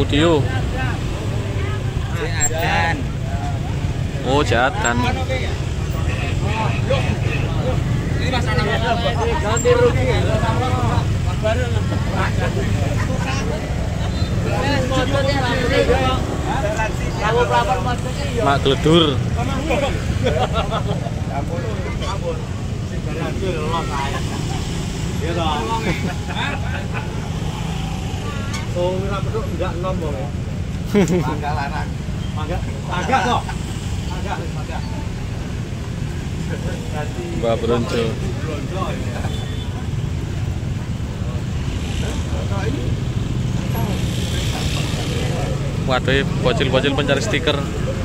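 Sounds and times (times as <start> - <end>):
voices: 0.0 - 48.0.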